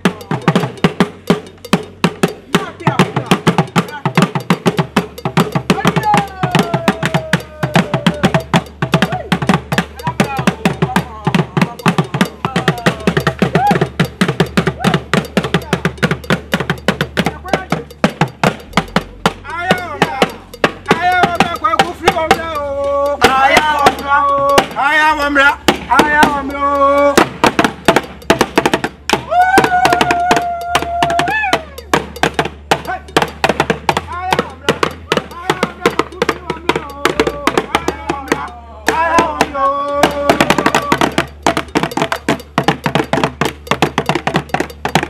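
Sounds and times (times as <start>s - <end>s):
fast hand drumming: 0.0s - 45.0s
rising and falling vocal calls: 5.8s - 9.7s, 10.4s - 16.3s, 29.1s - 32.1s, 36.9s - 42.1s.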